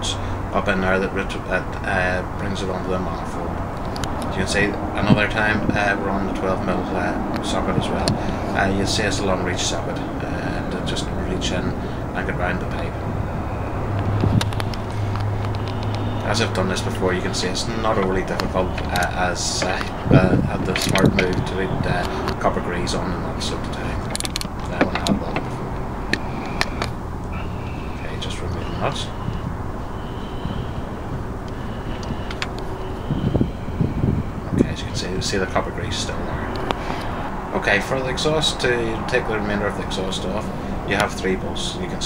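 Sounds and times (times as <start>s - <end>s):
steady low hum: 0.0s - 42.0s
steady low rumble: 0.0s - 42.0s
handling noise: 12.8s - 34.6s.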